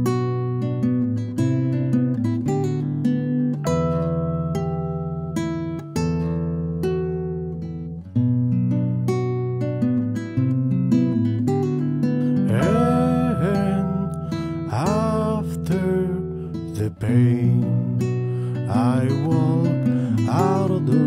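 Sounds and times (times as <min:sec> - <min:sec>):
acoustic guitar picking chords: 0:00.0 - 0:21.0.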